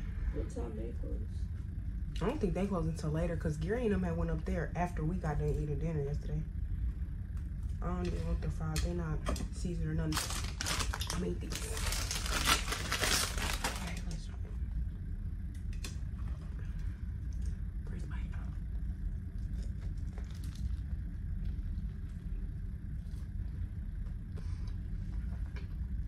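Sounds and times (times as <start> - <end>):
steady low hum: 0.0 - 26.0
plastic packet crinkling and tearing: 10.1 - 14.0.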